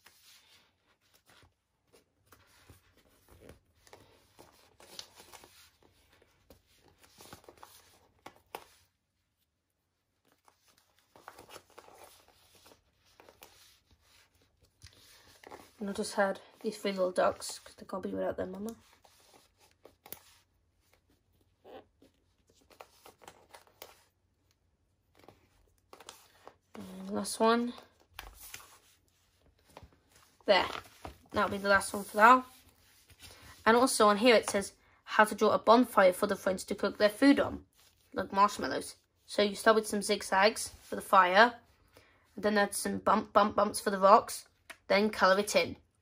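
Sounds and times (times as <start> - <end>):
paper sticker sheet rustling: 10.2 - 34.6.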